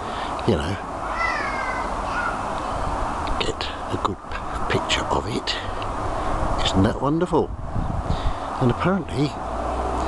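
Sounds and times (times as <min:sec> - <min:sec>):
low background noise: 0:00.0 - 0:10.0
drawn-out animal call: 0:01.0 - 0:02.5.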